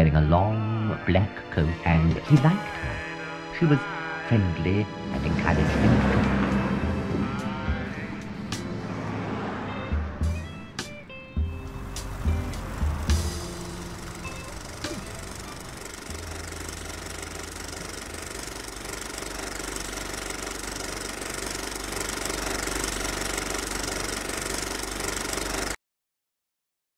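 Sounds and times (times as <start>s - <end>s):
background music of sustained tones: 0.0s - 18.6s.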